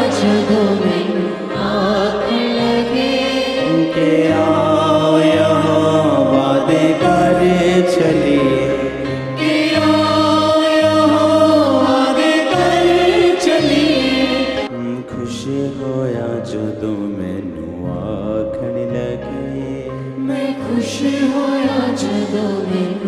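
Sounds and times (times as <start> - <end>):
voices singing worship song: 0.0 - 23.0.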